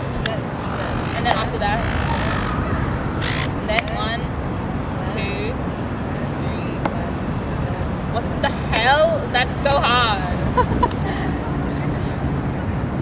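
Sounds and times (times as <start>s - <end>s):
distant traffic rumble: 0.0s - 13.0s.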